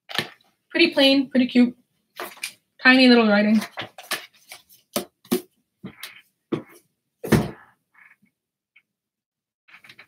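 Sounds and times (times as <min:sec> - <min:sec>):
book pages rustling: 0:02.2 - 0:02.6, 0:03.5 - 0:06.8, 0:09.7 - 0:10.0.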